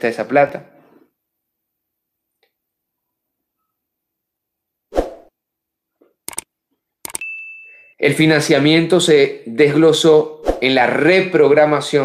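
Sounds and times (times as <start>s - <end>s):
quick clicks: 6.3s - 7.2s
high bell ding: 7.2s - 8.3s.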